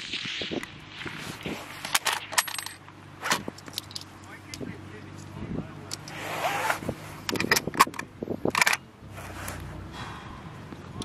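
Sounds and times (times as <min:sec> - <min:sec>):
brass case clinking: 0:01.8 - 0:04.3
rifle bolt metallic clicks: 0:07.3 - 0:08.8.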